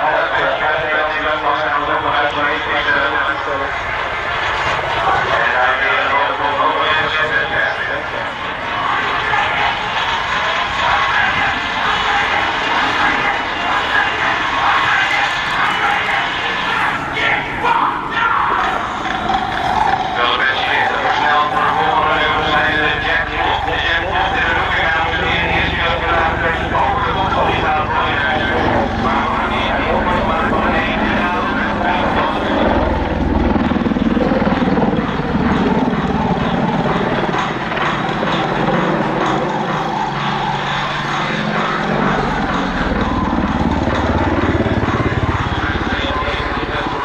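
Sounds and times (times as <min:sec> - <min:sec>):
helicopter rotor and engines: 0:00.0 - 0:47.0.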